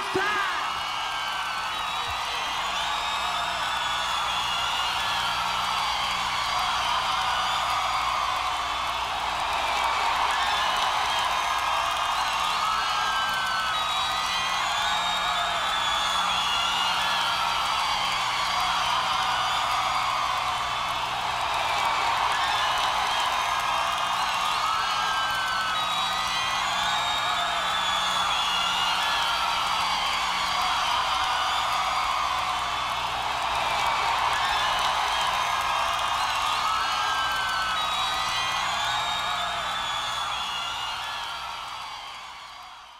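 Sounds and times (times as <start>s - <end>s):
crowd cheering and whooping: 0.0s - 42.9s.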